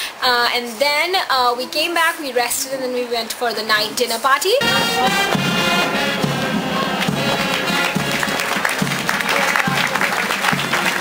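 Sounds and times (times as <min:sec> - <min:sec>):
crowd applauding: 0:04.6 - 0:11.0
marching band music: 0:04.6 - 0:11.0
steady drum beat: 0:04.6 - 0:11.0.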